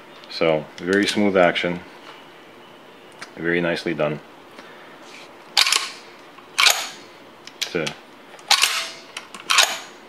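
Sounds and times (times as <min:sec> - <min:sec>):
rifle lever action clacks: 0:06.6 - 0:09.9.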